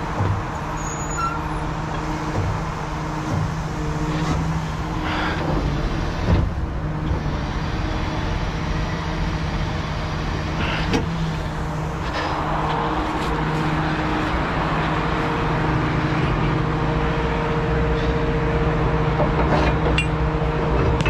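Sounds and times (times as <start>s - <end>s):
diesel truck engine running: 0.0s - 21.0s.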